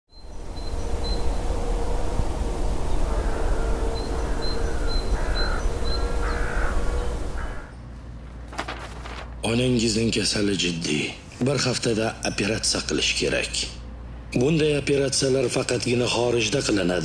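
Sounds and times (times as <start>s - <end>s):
low wind rumble: 0.1s - 9.4s.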